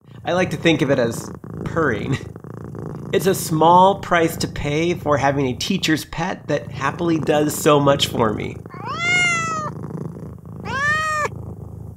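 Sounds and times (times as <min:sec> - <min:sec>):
cat purring: 0:00.0 - 0:11.9
cat meowing: 0:08.7 - 0:09.7, 0:10.6 - 0:11.3.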